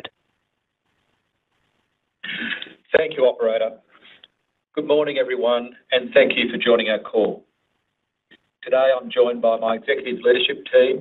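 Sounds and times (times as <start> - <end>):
man clearing throat: 2.3 - 2.7.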